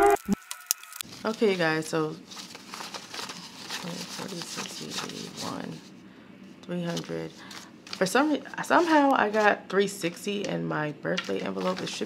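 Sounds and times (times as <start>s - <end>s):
banknotes rustling and flicking: 0.4s - 5.9s, 6.7s - 12.0s.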